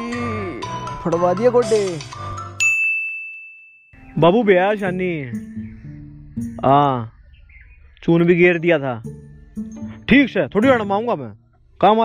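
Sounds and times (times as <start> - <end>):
background music: 0.0 - 2.6, 4.0 - 12.0
high bell-like ding: 2.6 - 4.0.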